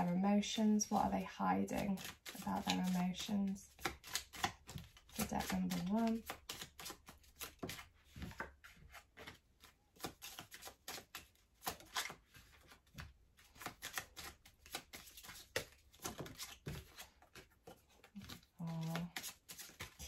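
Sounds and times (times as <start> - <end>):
cards being shuffled: 1.7 - 20.0.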